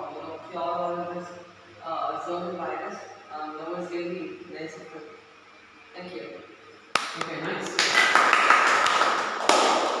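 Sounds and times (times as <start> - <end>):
audience applauding: 7.0 - 10.0.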